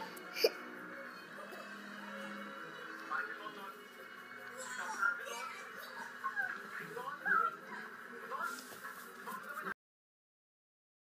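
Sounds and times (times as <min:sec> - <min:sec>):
faint cartoon music on television: 0:00.0 - 0:09.8.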